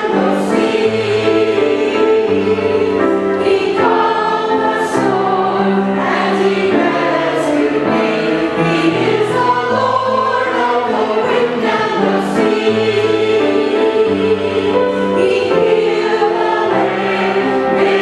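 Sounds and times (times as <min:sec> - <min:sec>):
choir singing in harmony: 0:00.0 - 0:18.0.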